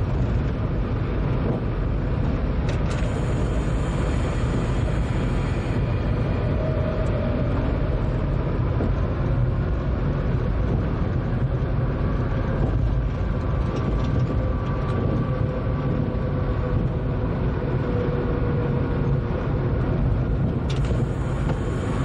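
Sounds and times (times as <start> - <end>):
train rumble on track: 0.0 - 22.0
faint steady whine: 2.7 - 8.4, 20.7 - 22.0.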